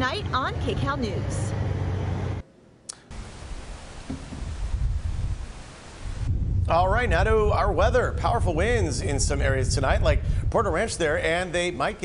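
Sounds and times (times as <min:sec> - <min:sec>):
wind hissing through trees: 0:03.0 - 0:12.0
wind buffeting microphone: 0:04.0 - 0:12.0.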